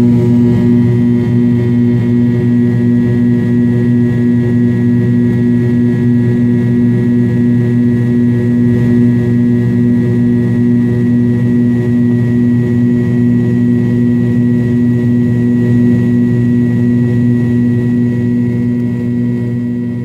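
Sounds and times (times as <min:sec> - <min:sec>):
airplane cabin engine drone: 0:00.0 - 0:20.0.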